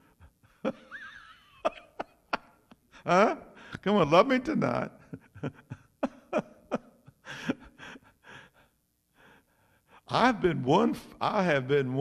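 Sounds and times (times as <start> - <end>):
man breathing: 2.8 - 3.8, 7.2 - 10.1.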